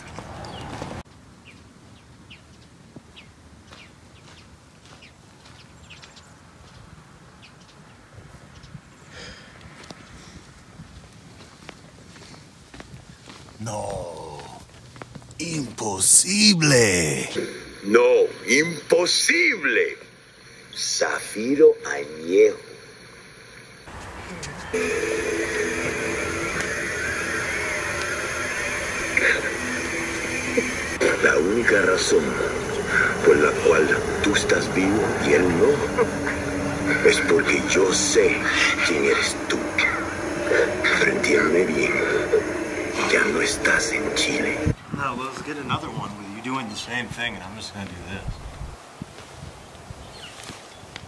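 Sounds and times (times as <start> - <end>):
small birds chirping: 0.0 - 10.5, 49.6 - 51.0
low held tones: 24.7 - 44.8.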